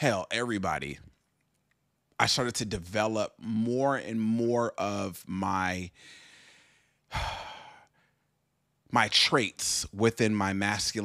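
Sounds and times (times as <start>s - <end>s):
man breathing: 5.9s - 8.3s
man sighing: 7.1s - 7.9s.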